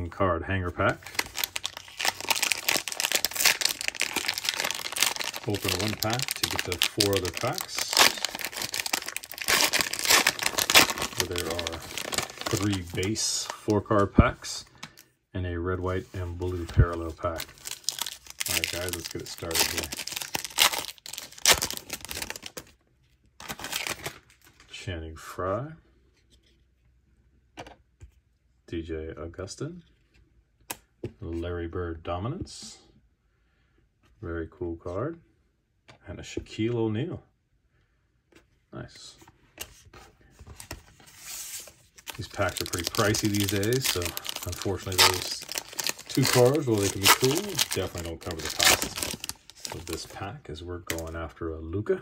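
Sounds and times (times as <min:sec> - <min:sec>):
plastic wrapper crinkling and tearing: 0:00.9 - 0:13.6, 0:16.5 - 0:22.8, 0:23.4 - 0:24.6, 0:40.5 - 0:50.3, 0:50.9 - 0:51.2.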